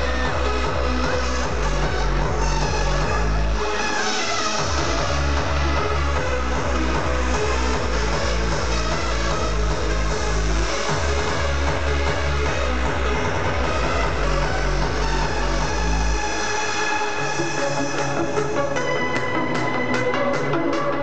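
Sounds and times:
hardstyle dance music: 0.0 - 21.0
pounding kick and bass: 0.0 - 21.0.

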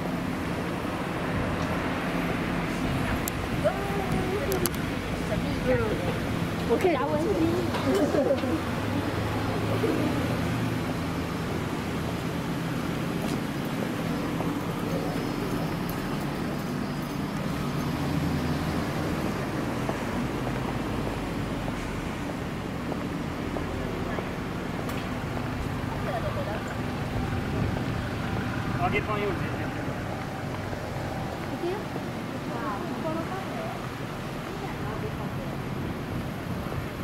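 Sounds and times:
car engines humming in traffic: 0.0 - 37.0.

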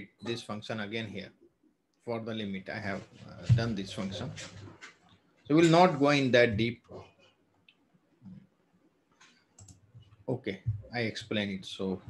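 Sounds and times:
faint computer clicks: 9.2 - 10.1.

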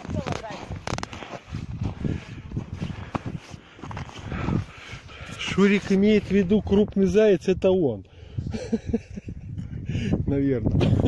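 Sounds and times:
footsteps on snowy rocky ground: 0.0 - 6.8.

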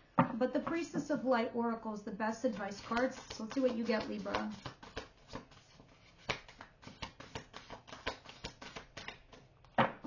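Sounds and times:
cards being shuffled: 2.5 - 9.8.

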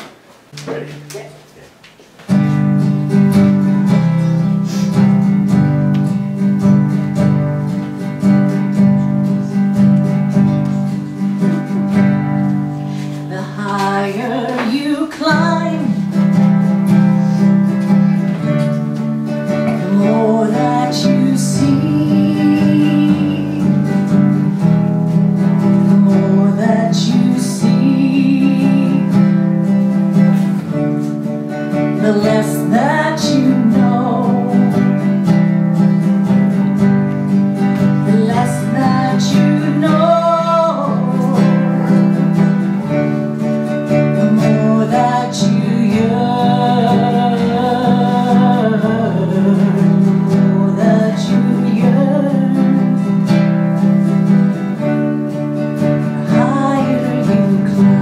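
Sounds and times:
strummed acoustic guitar: 0.0 - 58.0
woman singing: 11.6 - 16.4, 19.4 - 29.8, 31.7 - 35.1, 37.6 - 43.1, 43.9 - 53.6, 55.8 - 58.0.

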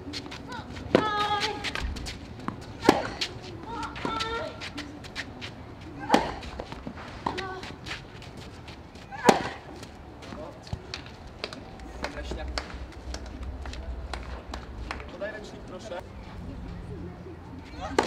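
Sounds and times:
low voices: 0.0 - 18.0
racquets hitting tennis ball: 0.2 - 15.1.

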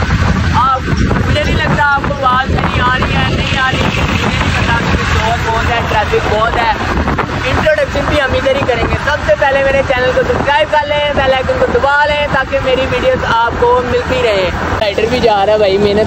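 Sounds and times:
motorbike road and engine noise: 0.0 - 16.0
wind buffeting microphone: 0.0 - 16.0
man talking: 0.5 - 16.0.

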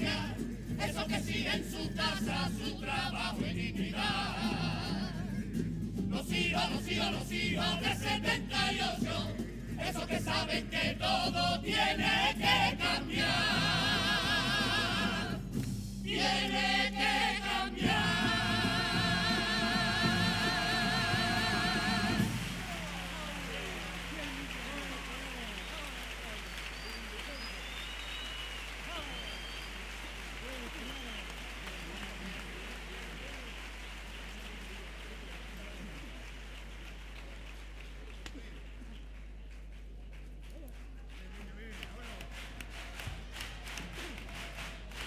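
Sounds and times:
choir holding chord with vibrato: 0.0 - 5.3, 6.2 - 23.0
audience applauding and cheering: 11.6 - 45.0.

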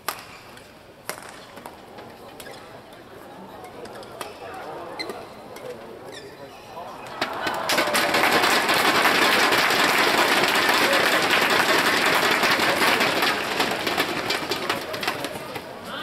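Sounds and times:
crowd clapping and cheering: 7.1 - 15.6.

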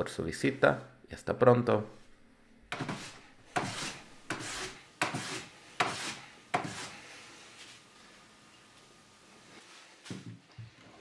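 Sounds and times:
hand plane shaving wood: 2.8 - 7.0.

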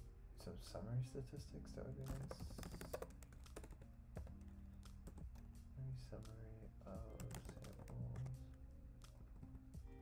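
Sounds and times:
computer keyboard typing: 2.0 - 5.6, 6.9 - 9.6.

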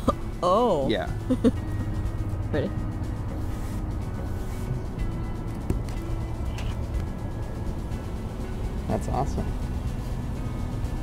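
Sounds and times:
low outdoor rumble: 0.0 - 11.0
soft background music: 0.0 - 11.0.

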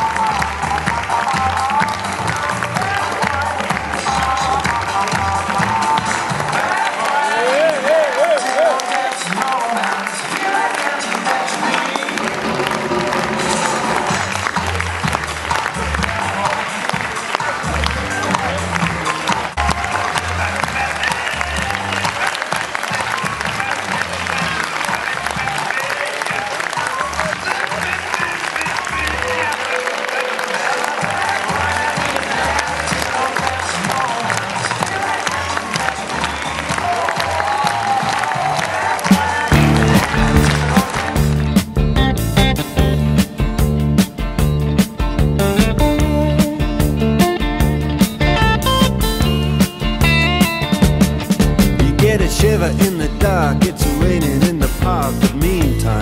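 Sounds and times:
audience applause: 0.0 - 42.2
crowd voices: 0.0 - 43.4
music playing: 0.0 - 56.0
song with guitar: 39.4 - 56.0.

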